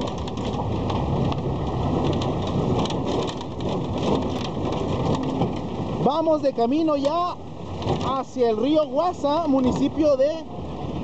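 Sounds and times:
rattles and knocks: 0.0s - 6.1s, 6.9s - 8.3s
truck driving on rough road: 0.0s - 11.0s.

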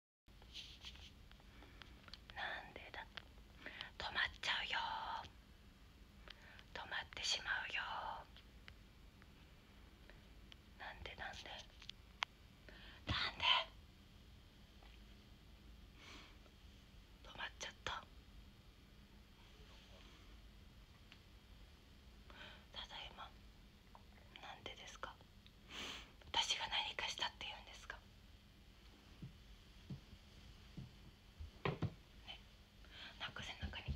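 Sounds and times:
woman whispering: 2.2s - 3.2s, 3.8s - 5.3s, 6.7s - 8.3s, 10.8s - 11.8s, 13.0s - 13.8s, 17.2s - 18.1s, 22.4s - 23.4s, 24.2s - 25.2s, 26.3s - 28.0s, 32.2s - 33.9s.

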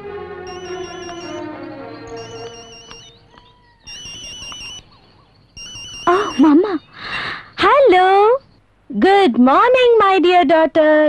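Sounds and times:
background film music: 0.0s - 5.5s
mobile phone ringtone trilling: 0.4s - 7.3s.

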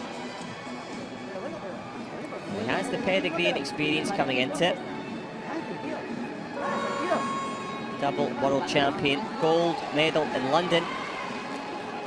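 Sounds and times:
crowd hubbub: 0.0s - 12.0s
faint background music: 0.0s - 12.0s.

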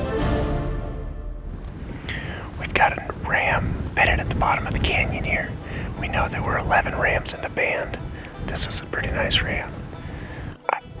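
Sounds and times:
low rumble: 0.9s - 7.0s
man whispering: 2.1s - 9.8s.

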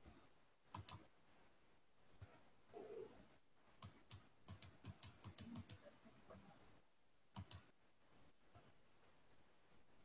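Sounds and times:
computer mouse clicks: 0.7s - 1.1s, 3.8s - 5.9s, 7.3s - 7.7s.

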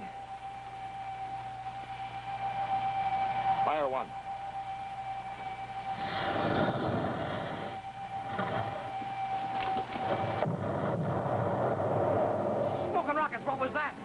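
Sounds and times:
steady whining tone: 0.0s - 14.0s
rumbling rush: 10.0s - 13.3s.

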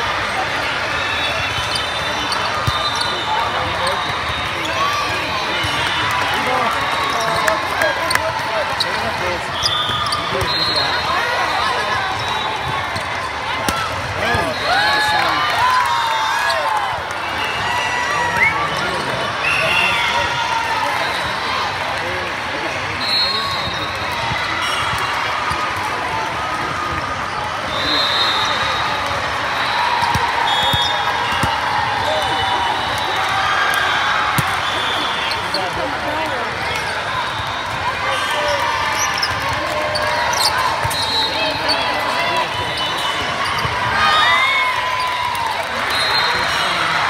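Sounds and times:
babble of many voices: 0.0s - 47.0s
referee whistle blasts: 1.4s - 4.8s, 9.5s - 11.5s, 23.0s - 24.0s, 27.7s - 29.0s, 30.1s - 33.3s, 40.8s - 41.7s, 45.8s - 46.6s.

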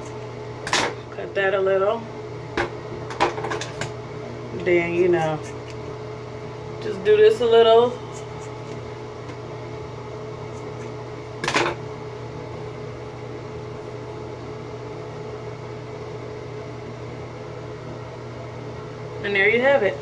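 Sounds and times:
ventilation fan humming: 0.0s - 20.0s.

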